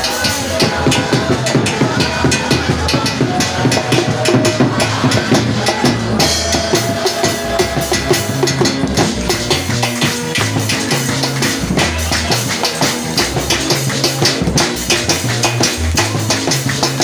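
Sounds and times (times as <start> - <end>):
drum kit fast dance beat: 0.0 - 17.0
low bass notes: 0.0 - 17.0.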